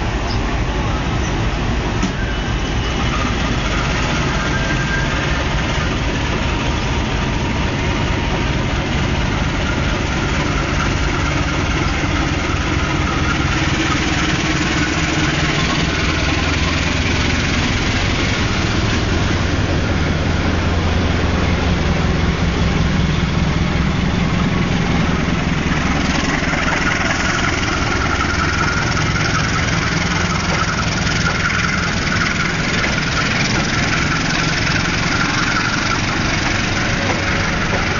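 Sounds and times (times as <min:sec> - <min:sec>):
locomotive diesel engine rumbling: 0:00.0 - 0:37.9.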